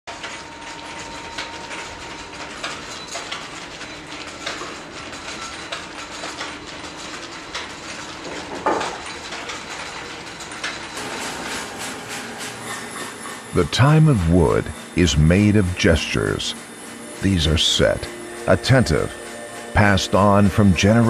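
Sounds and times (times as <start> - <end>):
mechanical clicking and knocking: 0.1 - 11.2
steady background hum: 0.1 - 21.0.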